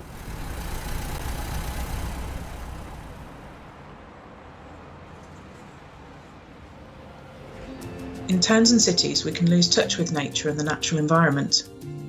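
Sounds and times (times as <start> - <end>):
steady traffic hiss: 0.0 - 10.7
vehicle rumble: 0.0 - 11.6.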